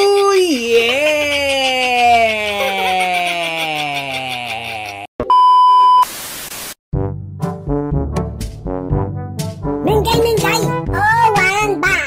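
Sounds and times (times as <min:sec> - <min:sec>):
man's drawn-out vocal call: 0:00.0 - 0:05.1
static hiss: 0:06.0 - 0:06.8.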